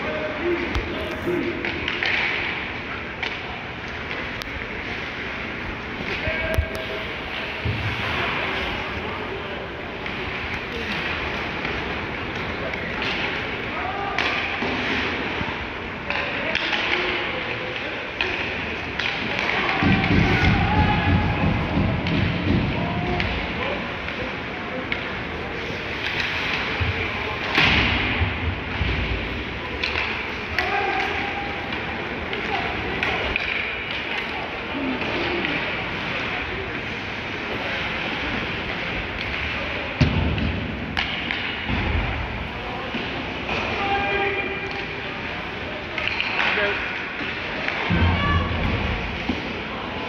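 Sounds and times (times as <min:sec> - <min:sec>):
pucks and sticks thumping boards: 0:00.5 - 0:09.2, 0:09.8 - 0:50.0.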